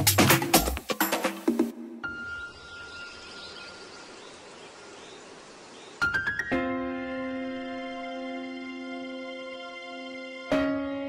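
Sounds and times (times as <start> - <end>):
soft hiss: 3.2 - 6.0.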